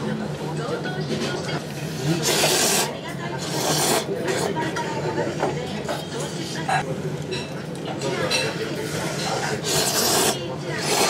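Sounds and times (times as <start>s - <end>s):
person slurping noodles: 1.8s - 4.6s, 9.4s - 11.0s.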